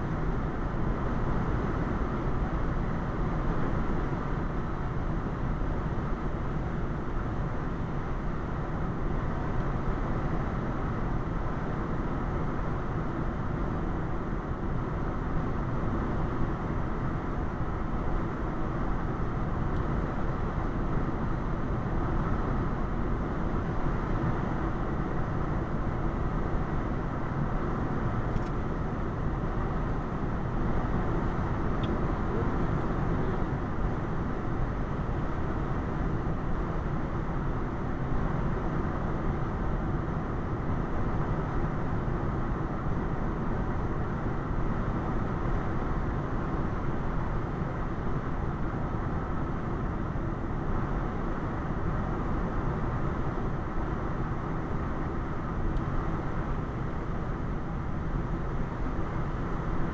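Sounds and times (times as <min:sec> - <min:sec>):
road and tyre noise: 0:00.0 - 0:59.9.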